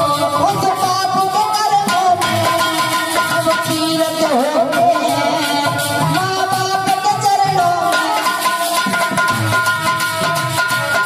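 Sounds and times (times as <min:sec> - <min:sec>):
drum beating: 0:00.0 - 0:11.0.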